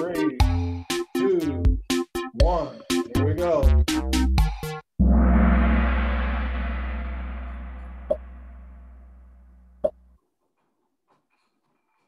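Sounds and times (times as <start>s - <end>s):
deep gong-like hit: 5.0s - 9.7s.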